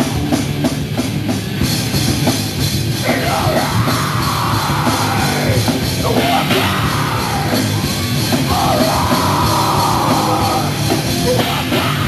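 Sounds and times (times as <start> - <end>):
heavy metal band playing: 0.0 - 12.0
shouted vocal: 3.0 - 12.0.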